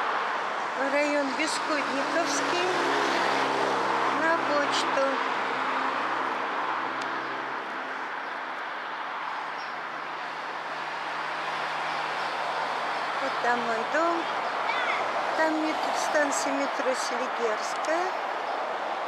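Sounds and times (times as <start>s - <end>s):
passing vehicle engine and tyres: 0.0s - 19.0s.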